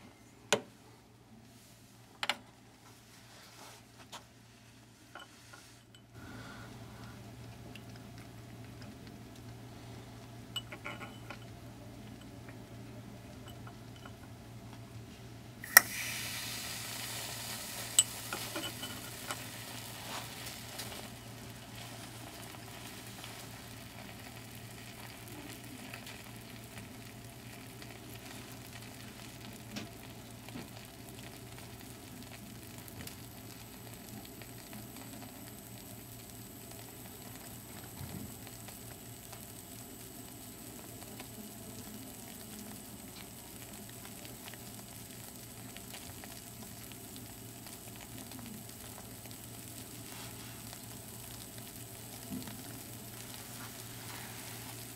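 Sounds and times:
foaming liquid fizzing: 15.6 - 54.9.

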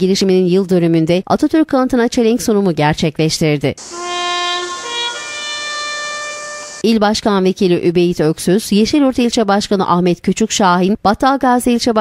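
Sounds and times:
bugle long held notes: 3.8 - 6.8.

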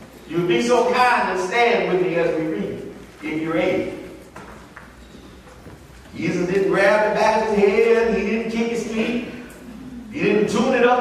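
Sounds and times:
shuffling: 0.0 - 10.2.

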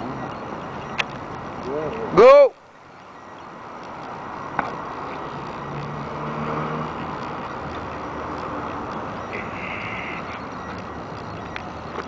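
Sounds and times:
street traffic noise: 0.0 - 12.0
vehicle engine hum: 0.0 - 12.0.

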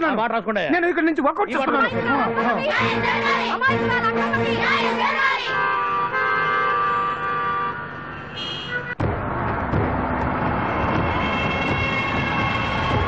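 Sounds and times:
film music: 1.5 - 6.2
loud vehicle noise: 1.6 - 13.0.

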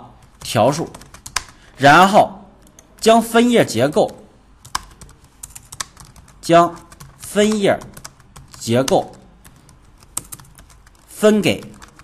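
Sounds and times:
computer keyboard key clicks: 4.6 - 6.3.

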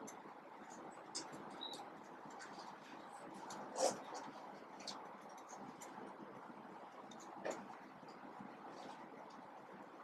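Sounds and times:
steady low hiss: 0.0 - 10.0
marker squeak: 1.5 - 1.9
marker scratching on paper: 2.3 - 4.3.

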